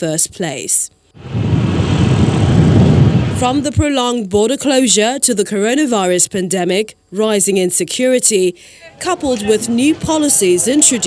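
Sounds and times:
road traffic rumble: 8.8 - 11.0
motorcycles passing: 9.0 - 11.0.

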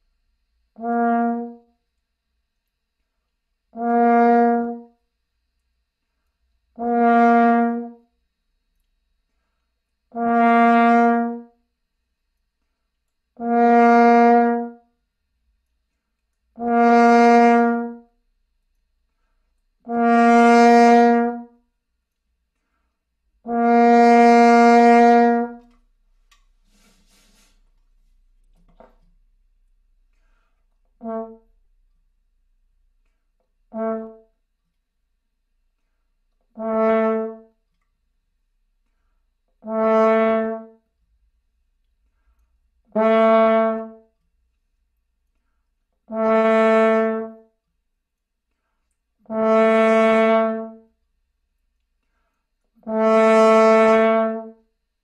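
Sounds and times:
french horn notes: 0.7 - 2.0, 3.6 - 5.2, 6.7 - 8.3, 10.1 - 11.8, 13.3 - 15.0, 16.2 - 18.7, 19.6 - 22.2, 23.4 - 34.6, 52.8 - 54.8.

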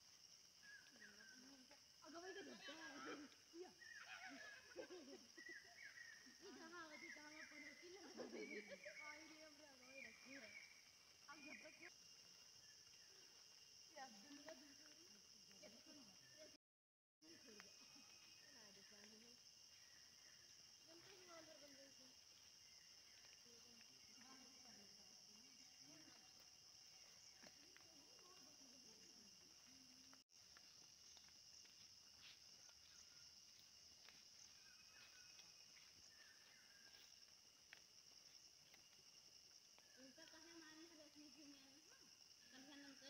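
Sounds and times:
forest insects droning: 0.0 - 16.6, 17.2 - 43.0.

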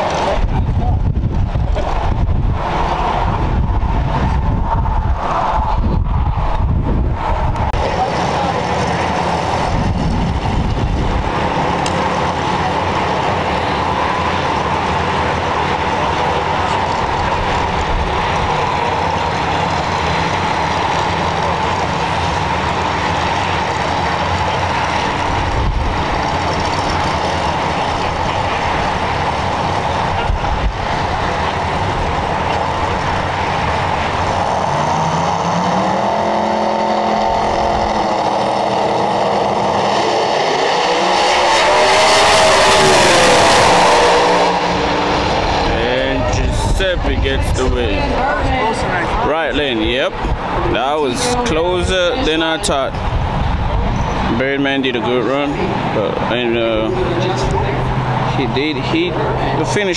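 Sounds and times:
drag race car engines: 0.0 - 59.9.

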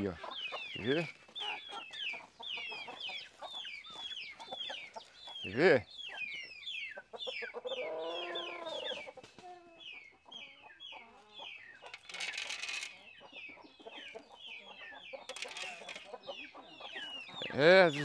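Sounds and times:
chicks peeping: 0.0 - 18.0
chicken drawn-out call: 7.0 - 18.0.

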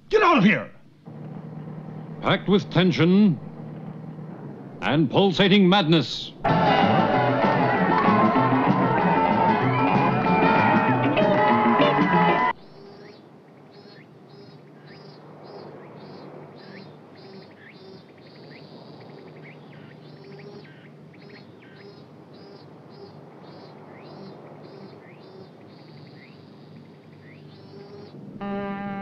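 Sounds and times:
faint low hum: 0.0 - 8.7
sustained music chord: 6.5 - 12.5, 28.4 - 29.0.

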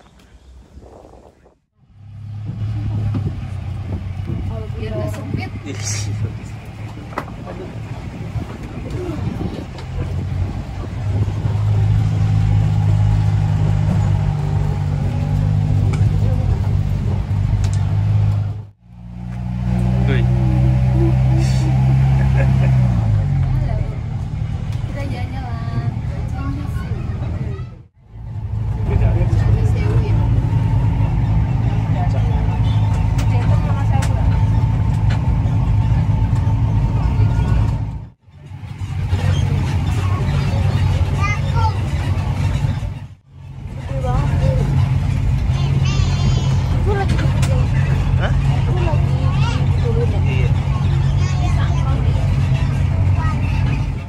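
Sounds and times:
tram engine running: 0.0 - 54.0.

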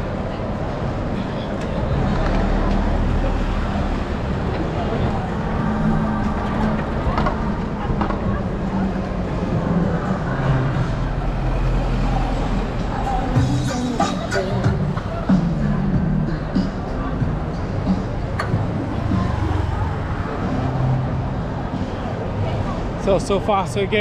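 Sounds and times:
traffic noise: 0.0 - 24.0
voices of passers-by: 0.0 - 24.0.

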